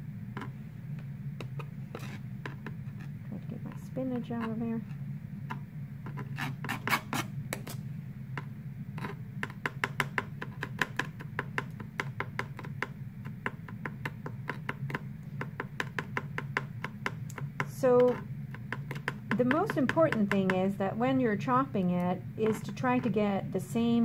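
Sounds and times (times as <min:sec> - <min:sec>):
knife chopping on plastic tray: 0:09.0 - 0:20.7.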